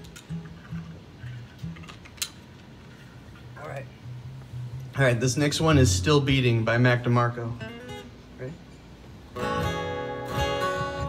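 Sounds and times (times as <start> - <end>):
acoustic guitar low plucked notes: 0.0 - 1.9, 3.4 - 11.0.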